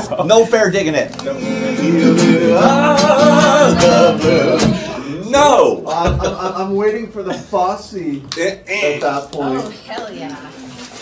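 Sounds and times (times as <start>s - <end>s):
acoustic guitar strummed: 1.0s - 5.1s
person singing: 1.2s - 5.2s.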